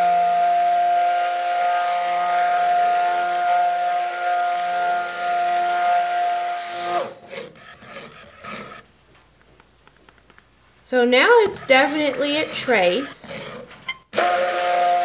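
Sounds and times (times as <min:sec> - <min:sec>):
stick blender motor whine: 0:00.0 - 0:08.8, 0:10.9 - 0:15.0.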